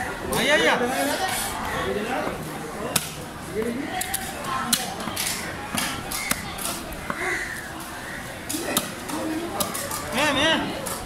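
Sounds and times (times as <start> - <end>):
voices talking: 0.0 - 11.0.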